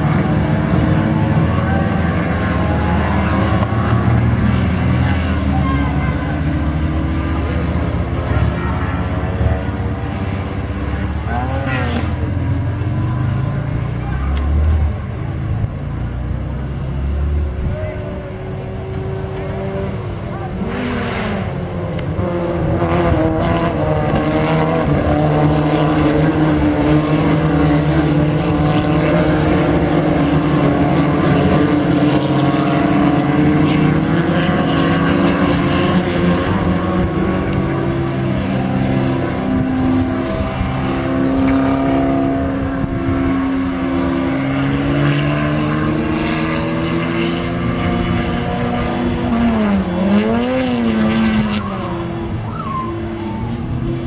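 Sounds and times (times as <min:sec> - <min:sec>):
race car engines at high revs: 0:00.0 - 0:54.0.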